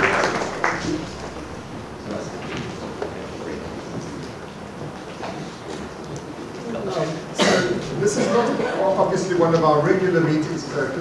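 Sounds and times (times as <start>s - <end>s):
low indistinct voices: 0.0s - 11.0s.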